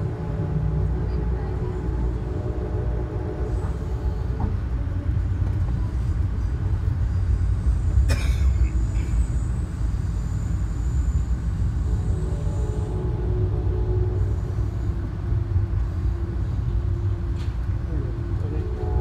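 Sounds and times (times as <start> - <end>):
train car rumble: 0.0 - 19.0.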